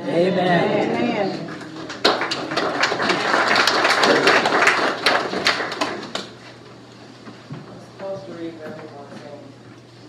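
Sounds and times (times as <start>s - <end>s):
congregation applauding: 1.5s - 6.5s.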